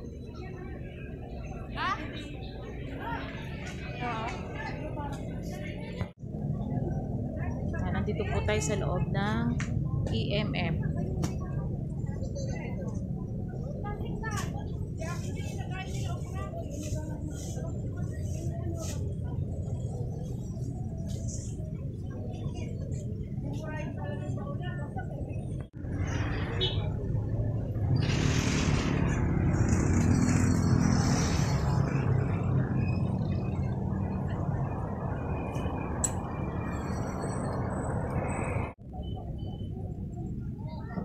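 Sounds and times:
people talking: 0.0 - 27.6, 38.9 - 41.0
vehicle engine rumbling: 0.0 - 41.0.

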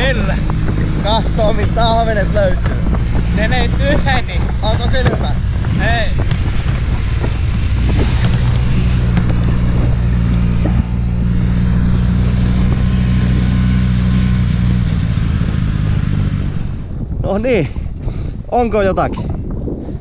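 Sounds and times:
snowmobile engine droning: 0.0 - 17.5
rushing ride noise: 0.0 - 17.7.

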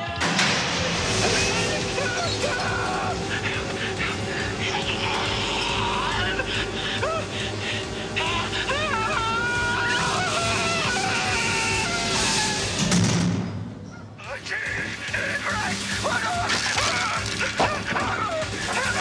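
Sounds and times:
horror film music score: 0.0 - 19.0
man crying out: 1.9 - 12.8.

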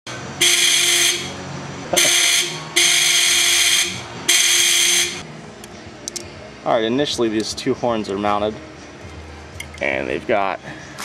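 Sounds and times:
motorcycle air horn blast: 0.4 - 1.4, 2.0 - 5.2
person laughing: 1.8 - 2.2.

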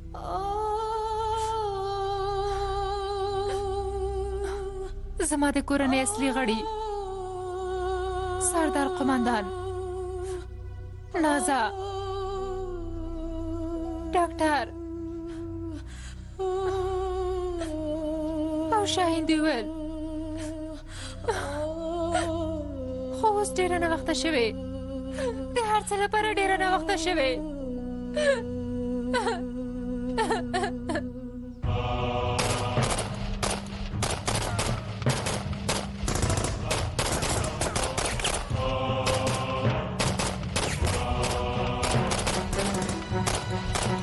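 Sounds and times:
automatic rifle fire: 32.4 - 38.4.

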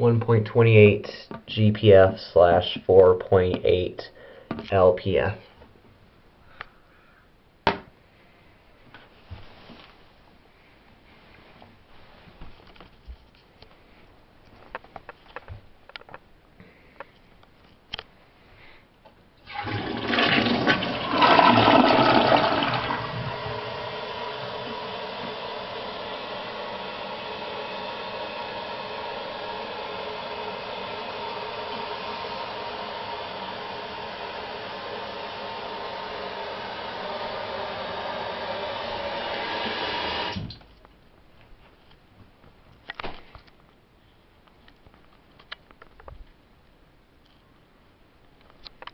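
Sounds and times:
toilet flushing: 19.4 - 40.6
water running as toilet refills: 19.4 - 40.6.

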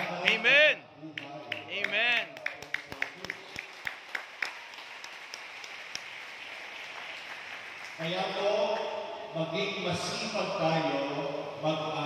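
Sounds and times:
crowd clapping: 0.0 - 8.8.

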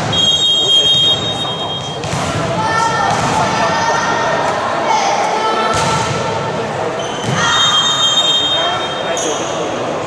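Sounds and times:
chatter of voices: 0.0 - 10.0
referee's whistle: 0.1 - 2.0, 7.0 - 9.2.

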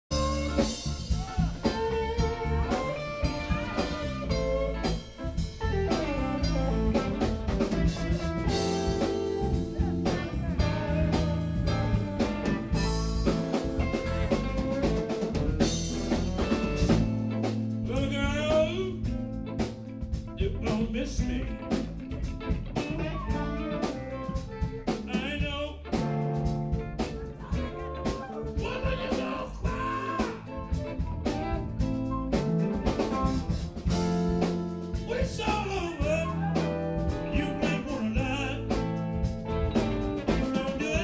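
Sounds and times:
live blues band playing: 0.1 - 41.0.

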